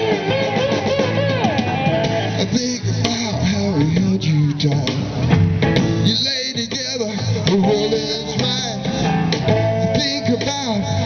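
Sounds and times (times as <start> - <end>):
bending lead guitar line: 0.0 - 11.0
live blues band playing: 0.0 - 11.0.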